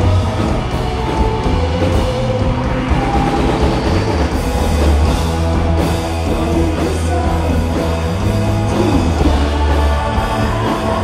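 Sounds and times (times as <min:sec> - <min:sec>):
loud droning rock band: 0:00.0 - 0:11.0.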